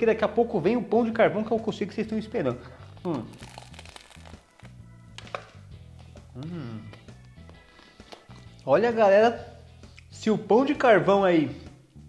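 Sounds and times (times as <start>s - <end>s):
soft background music: 0.0s - 12.0s
crust crunching as bitten and chewed: 3.0s - 5.3s.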